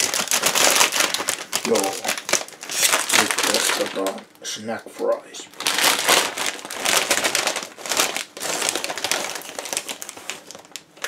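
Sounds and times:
plastic snack bag crinkling: 0:00.0 - 0:04.2, 0:05.5 - 0:11.0.

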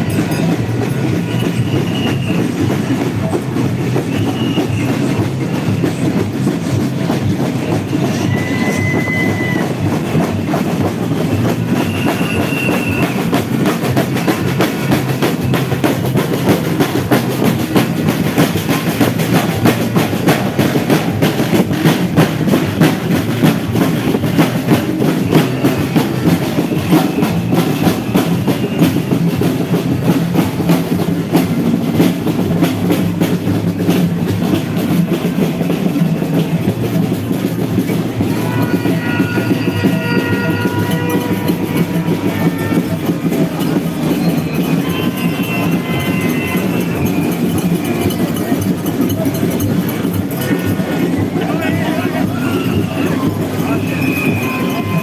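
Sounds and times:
large crowd walking: 0:00.0 - 0:55.0
snare drums marching rhythm: 0:00.0 - 0:55.0.

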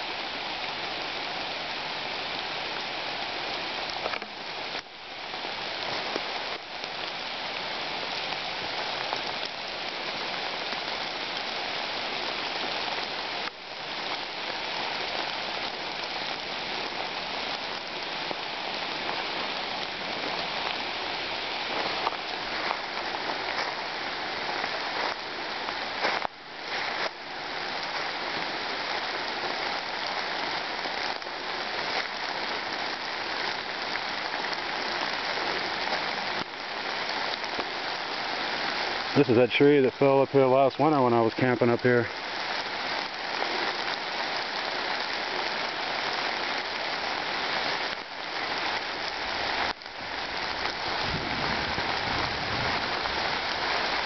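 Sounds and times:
rain falling through leaves: 0:00.0 - 0:54.0.

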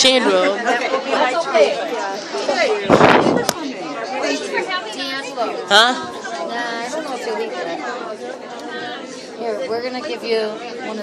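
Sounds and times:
people talking in a room: 0:00.0 - 0:11.0.

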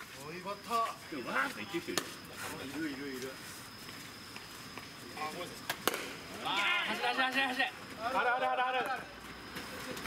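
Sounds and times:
bat striking ball: 0:05.7 - 0:06.2
players shouting: 0:06.3 - 0:09.0.

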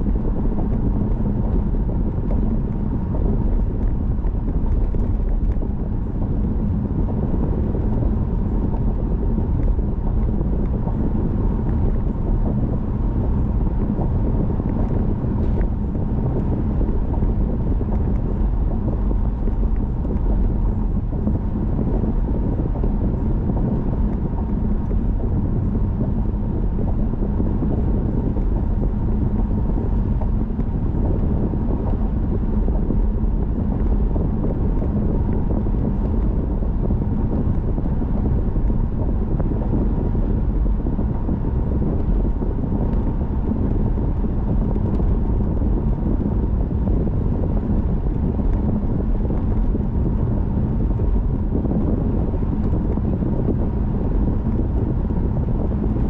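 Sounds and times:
car road and engine rumble: 0:00.0 - 0:56.0
faint steady hum: 0:00.0 - 0:56.0.

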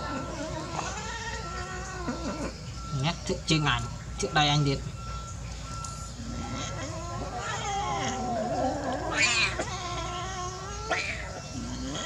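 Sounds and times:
cats crying: 0:00.0 - 0:02.9, 0:06.2 - 0:12.0.

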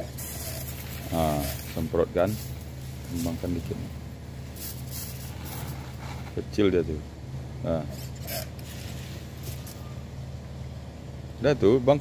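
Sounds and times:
sprayer hissing bursts: 0:00.0 - 0:03.4, 0:04.4 - 0:06.1
steady low hum: 0:00.0 - 0:12.0.

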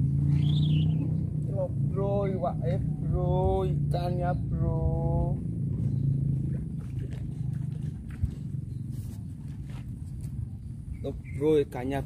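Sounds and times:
low engine-like rumble: 0:00.0 - 0:12.0.

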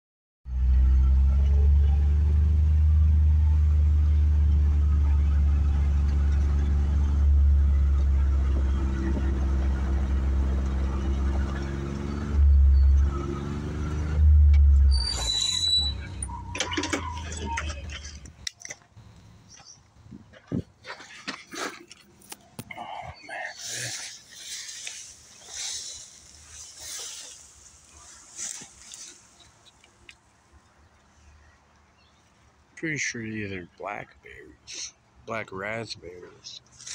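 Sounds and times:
vehicle engine droning: 0:00.5 - 0:19.8, 0:21.2 - 0:30.6
rustling through tall grass: 0:23.5 - 0:30.4, 0:36.7 - 0:36.9.

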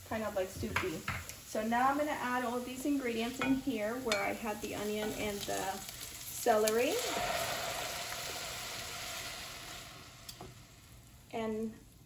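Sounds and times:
sauce sizzling in hot pan: 0:00.0 - 0:12.0.

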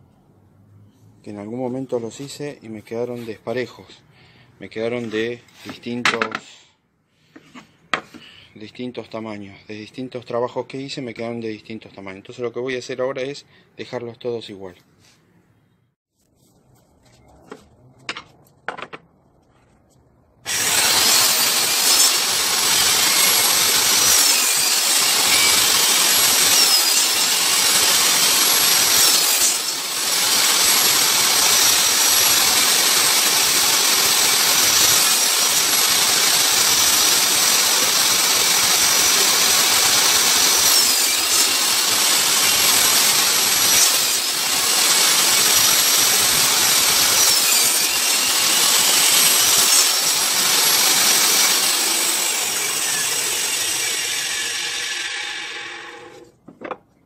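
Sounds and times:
table saw cutting wood: 0:20.5 - 0:56.4
table saw winding down: 0:20.5 - 0:56.4.

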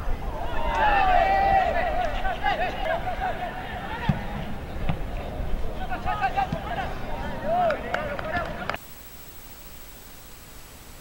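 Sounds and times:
players' voices: 0:00.0 - 0:08.8
stadium ambience: 0:00.0 - 0:09.4.

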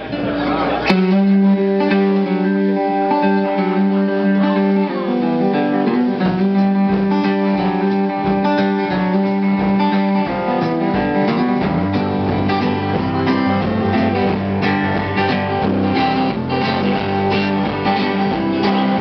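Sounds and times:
live band playing guitar-led song: 0:00.0 - 0:19.0.

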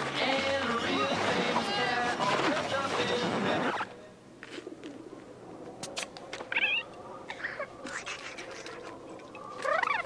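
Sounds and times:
music and sound effects: 0:00.0 - 0:03.9.

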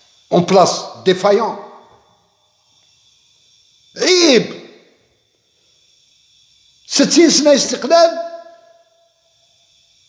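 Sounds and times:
man talking: 0:00.3 - 0:01.7, 0:04.0 - 0:04.6, 0:06.9 - 0:08.5
man exclaiming: 0:04.0 - 0:04.6, 0:07.1 - 0:08.4.

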